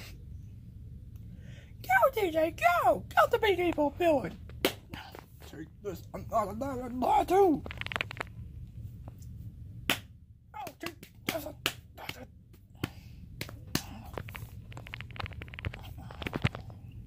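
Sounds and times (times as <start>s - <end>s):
steady low hum: 0.0s - 17.0s
sharp clicks and smacks: 4.4s - 5.3s, 9.9s - 16.8s.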